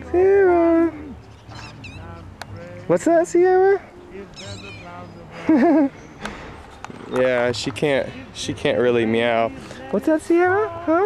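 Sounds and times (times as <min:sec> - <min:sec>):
man calling in sing-song voice: 0:00.0 - 0:06.1, 0:07.0 - 0:11.0
faint high chirps: 0:04.1 - 0:05.3.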